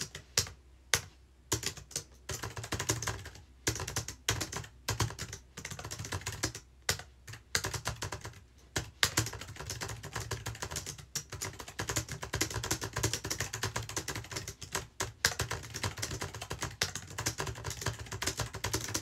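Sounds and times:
fast typing on a keyboard: 0.0s - 19.0s.

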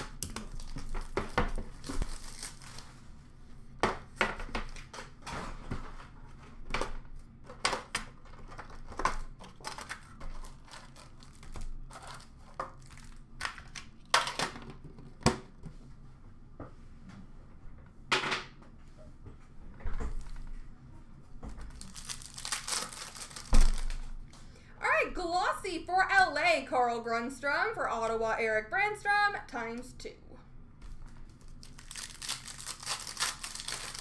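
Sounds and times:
plastic wrap crinkling and tearing: 0.0s - 3.0s, 7.8s - 14.1s, 21.6s - 24.2s, 31.3s - 34.0s.

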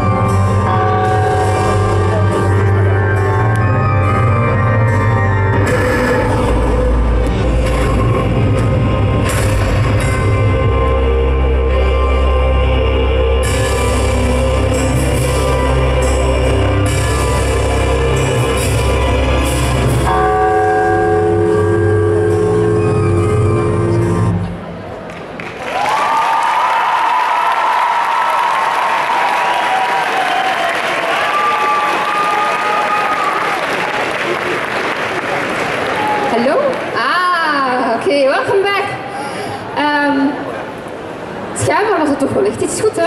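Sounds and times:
backing music with deep bass: 0.0s - 24.7s
audience applauding and cheering: 24.8s - 37.0s.

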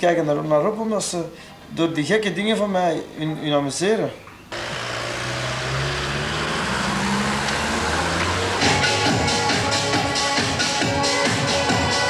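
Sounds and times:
van driving past: 4.5s - 10.1s
electronic dance music: 4.5s - 12.0s.

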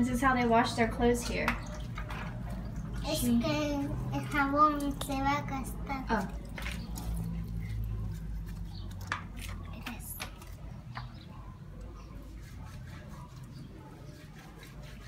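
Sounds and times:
wet cloth rubbed on concrete: 12.0s - 15.0s.

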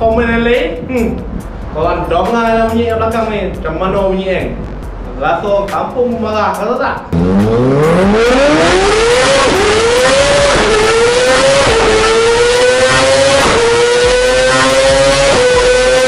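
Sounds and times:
motorcycle engine revving hard: 7.2s - 16.0s.

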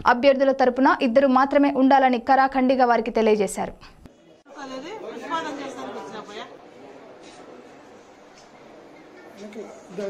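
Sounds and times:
voices chattering: 4.1s - 10.0s.

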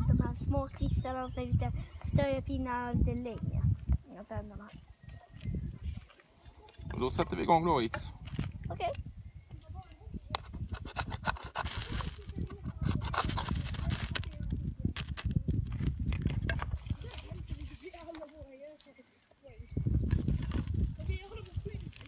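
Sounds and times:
wood and bark knocking and rustling: 10.4s - 22.0s.

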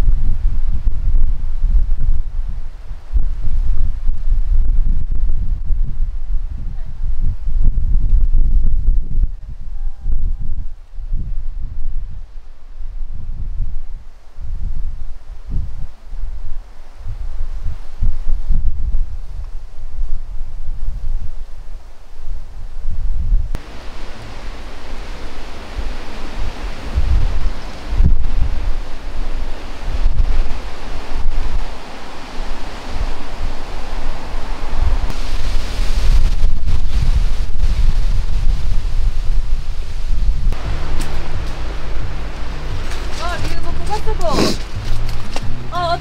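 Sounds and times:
wind buffeting microphone: 0.0s - 46.0s
sea surf on shore: 23.6s - 46.0s.

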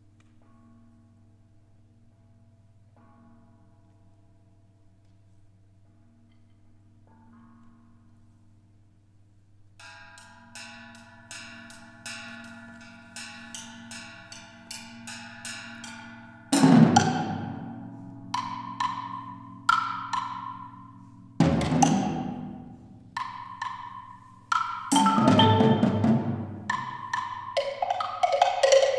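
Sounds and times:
mallet strokes on metal percussion: 9.8s - 28.9s
loud deep percussion strokes: 21.4s - 23.2s, 24.9s - 27.2s.

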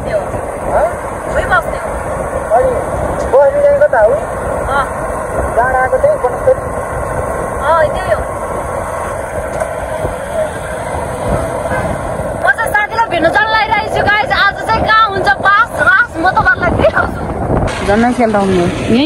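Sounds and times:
road noise: 0.0s - 19.0s
wind rush on motorbike: 0.0s - 19.0s
woman's voice: 12.4s - 19.0s.

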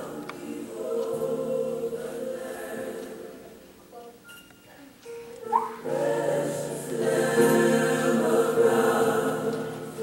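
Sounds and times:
gospel choir singing held note: 0.0s - 3.6s, 5.5s - 10.0s.

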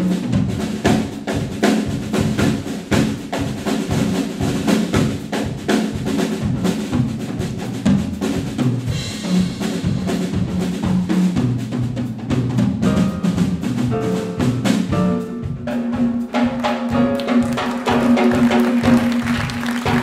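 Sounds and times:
drum kit samba rhythm: 0.0s - 20.0s
low bass notes: 8.9s - 15.7s.

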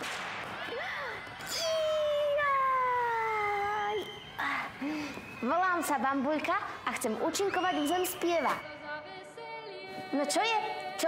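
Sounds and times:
short breath: 4.4s - 5.4s.

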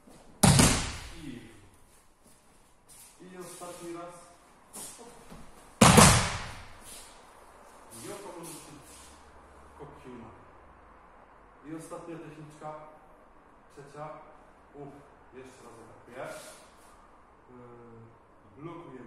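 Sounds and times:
body thudding on floor mats: 0.3s - 1.1s, 5.3s - 6.8s.

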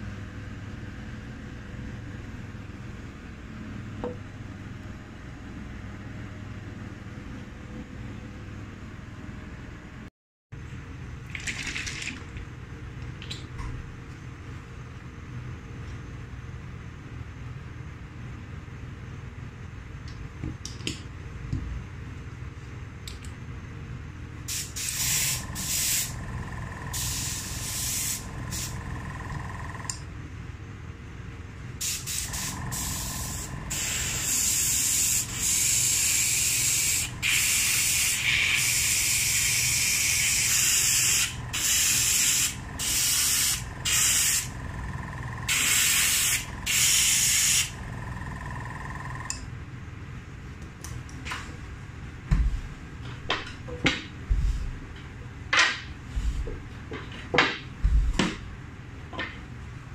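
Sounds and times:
airbrush spraying hiss: 24.5s - 26.2s, 26.9s - 28.8s, 31.8s - 44.5s, 45.5s - 47.8s.

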